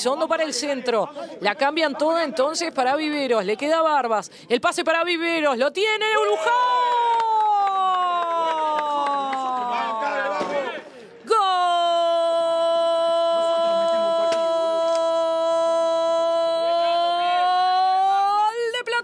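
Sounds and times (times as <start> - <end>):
brief breath: 10.8 - 11.2.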